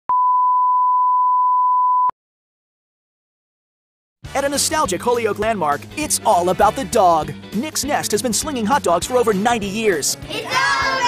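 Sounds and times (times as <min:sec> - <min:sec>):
line-up tone beep: 0:00.1 - 0:02.1.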